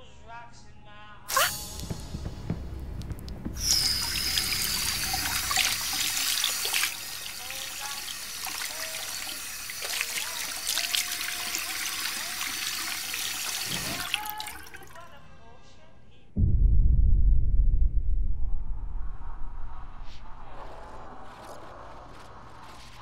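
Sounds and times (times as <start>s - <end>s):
tap water running into sink: 3.0s - 15.0s.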